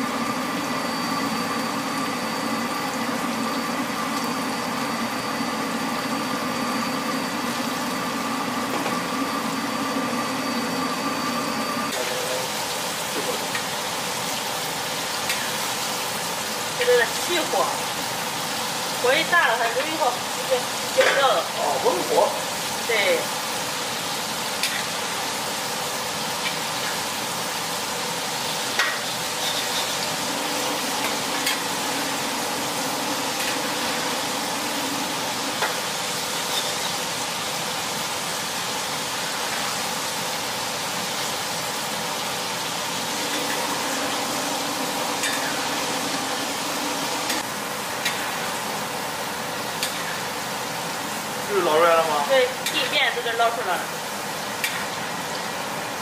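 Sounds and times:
deep-frying sizzle and bubbling: 0:00.0 - 0:56.0.

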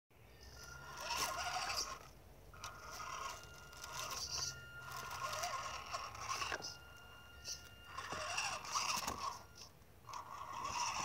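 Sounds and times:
electric motor whining: 0:00.3 - 0:11.0
tyres scraping on rock: 0:07.5 - 0:09.5.

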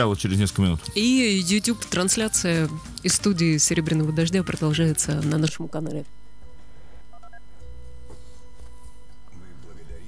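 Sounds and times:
low steady hum: 0:03.3 - 0:10.0.

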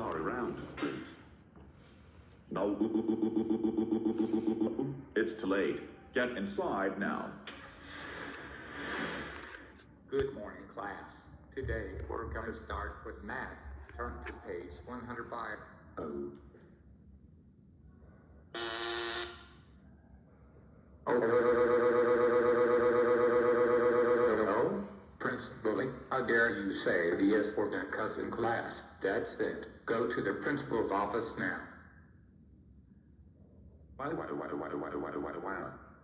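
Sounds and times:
stuttering text-to-speech voice: 0:00.0 - 0:01.3, 0:02.5 - 0:08.3, 0:08.9 - 0:16.6, 0:21.1 - 0:21.6, 0:23.3 - 0:31.7, 0:34.0 - 0:35.8.

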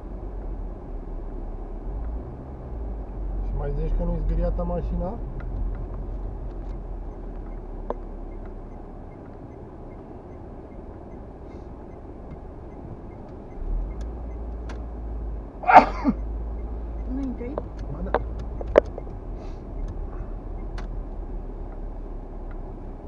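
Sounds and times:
car engine and road rumble: 0:00.0 - 0:23.0.

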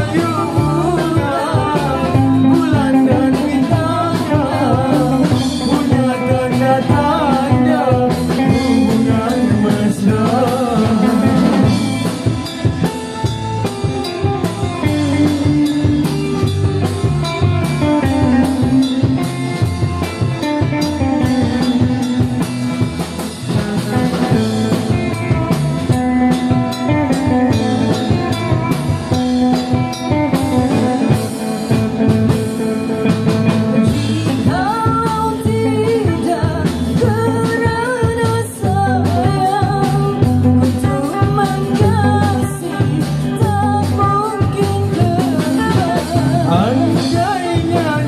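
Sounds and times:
person singing: 0:00.0 - 0:12.4, 0:33.7 - 0:48.0
drum kit: 0:00.0 - 0:48.0
electric guitars: 0:00.0 - 0:48.0.

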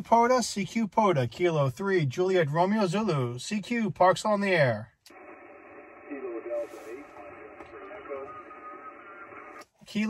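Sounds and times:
radio band noise: 0:05.1 - 0:09.6
faint radio voice: 0:05.8 - 0:09.6.

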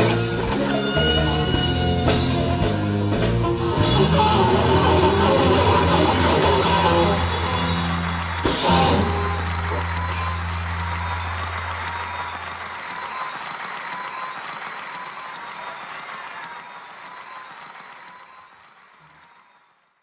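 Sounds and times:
band chord ringing out: 0:00.0 - 0:12.6
applause: 0:05.5 - 0:20.0.

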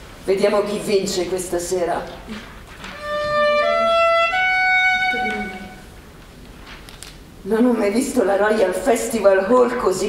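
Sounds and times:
violin bowed notes: 0:02.9 - 0:05.9.

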